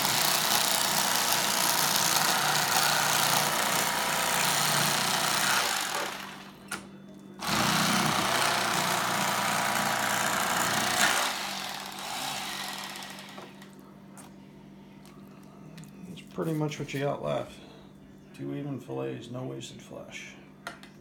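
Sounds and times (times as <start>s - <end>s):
electric knife sawing fish: 0.0s - 6.5s, 7.4s - 13.6s.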